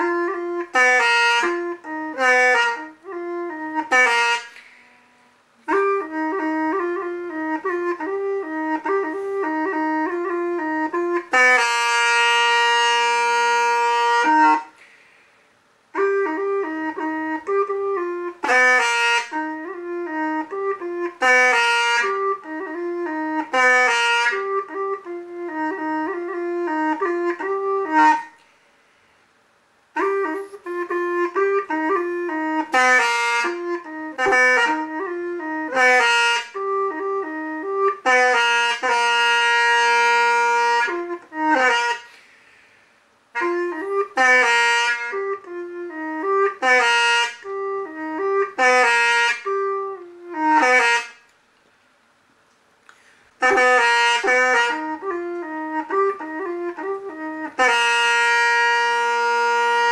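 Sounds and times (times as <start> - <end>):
bamboo pipe melody: 0.0 - 15.3, 15.9 - 28.5, 29.9 - 42.7, 43.3 - 51.3, 52.9 - 59.9.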